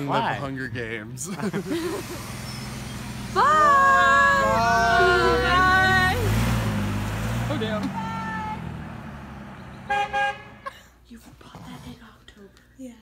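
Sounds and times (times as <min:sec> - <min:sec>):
car pulling away: 0:01.4 - 0:10.6
car horn tooting: 0:09.8 - 0:10.7.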